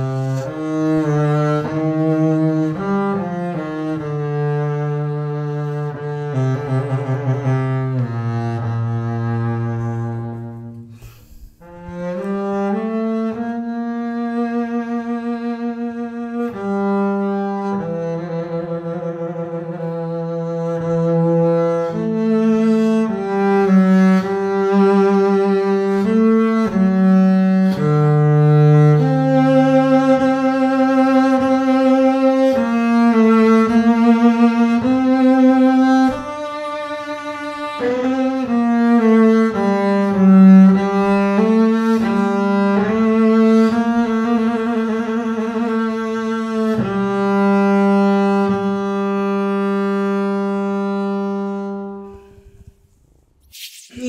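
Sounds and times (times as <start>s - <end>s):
bowed double bass melody: 0.0s - 52.7s.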